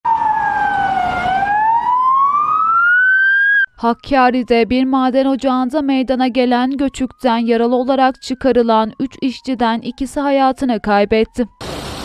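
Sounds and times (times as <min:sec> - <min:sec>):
ambulance siren wailing: 0:00.0 - 0:11.6.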